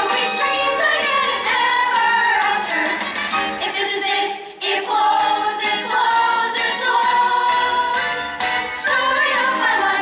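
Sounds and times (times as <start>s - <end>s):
chorus singing with accompaniment: 0.0s - 10.0s.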